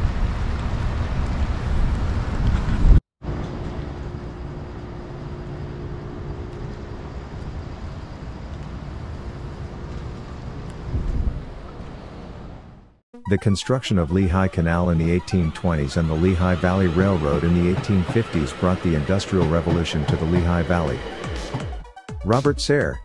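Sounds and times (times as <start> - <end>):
wind rumbling on microphone: 0.0 - 4.7, 6.1 - 12.8.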